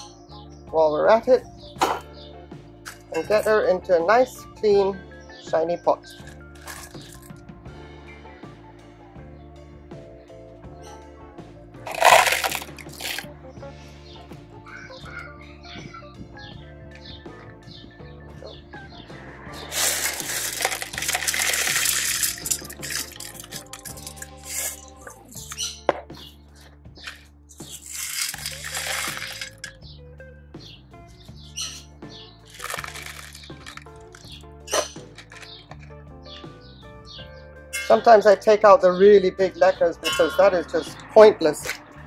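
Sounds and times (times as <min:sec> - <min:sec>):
background music with bass: 0:00.0 - 0:42.0
clay pebbles rattling: 0:06.1 - 0:07.3, 0:11.9 - 0:13.2, 0:19.6 - 0:25.5, 0:27.0 - 0:29.8, 0:32.5 - 0:34.3.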